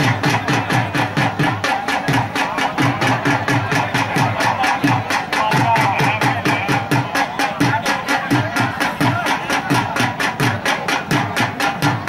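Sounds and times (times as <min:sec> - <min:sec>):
drum beaten in fast rhythm: 0:00.0 - 0:12.0.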